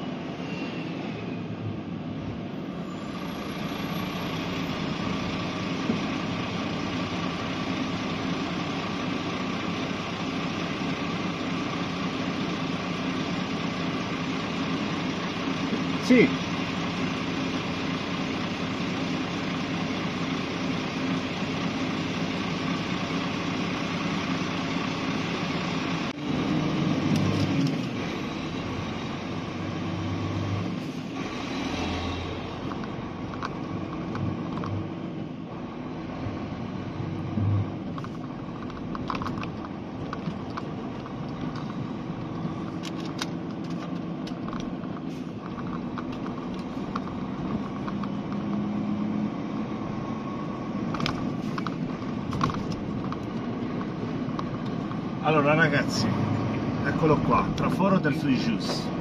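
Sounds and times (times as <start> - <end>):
vehicle engine idling and pulling away: 0.0 - 59.0.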